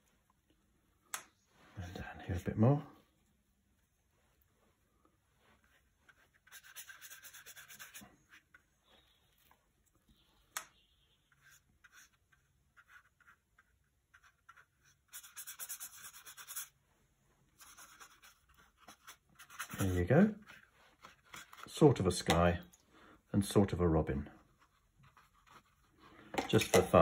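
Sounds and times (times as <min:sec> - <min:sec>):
paintbrush scrubbing on paper: 0:03.1 - 0:08.6, 0:11.2 - 0:21.8.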